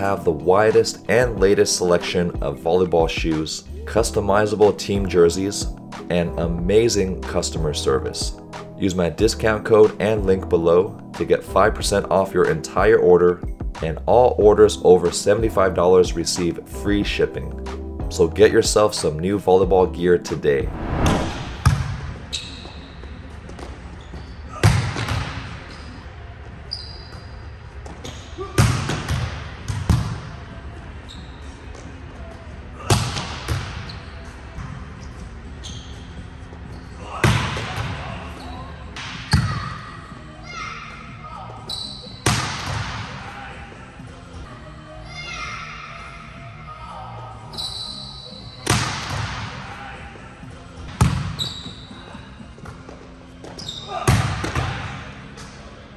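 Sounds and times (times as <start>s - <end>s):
volleyball spike smack: 21.1s - 22.0s
volleyball echoing smacks: 21.6s - 22.2s
shoes squeaking on court: 21.6s - 26.1s, 26.7s - 28.5s, 31.0s - 32.0s, 33.5s - 39.8s, 41.5s - 42.3s, 47.5s - 48.7s, 51.0s - 54.1s.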